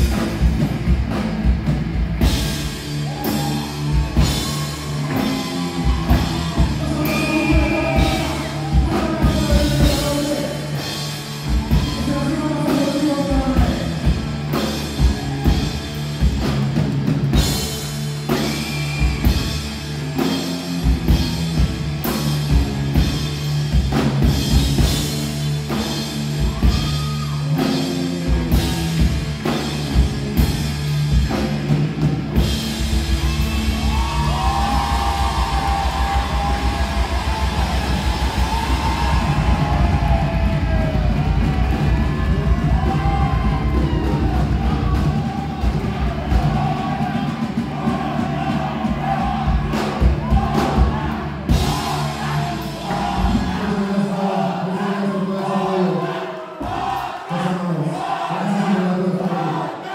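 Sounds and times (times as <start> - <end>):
live rock band playing: 0.0 - 53.8
crowd shouting: 2.8 - 10.1, 32.8 - 59.9
man singing: 6.7 - 10.7, 53.0 - 56.2, 57.3 - 59.7.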